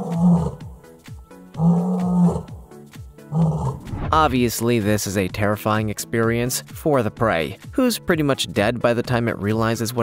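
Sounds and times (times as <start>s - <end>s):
lioness roaring: 0.0s - 0.6s, 1.6s - 2.6s, 3.3s - 3.9s.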